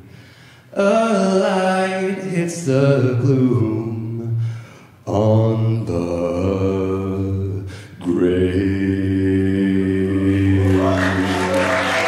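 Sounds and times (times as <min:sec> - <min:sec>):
a cappella group singing chords: 0:00.7 - 0:12.0.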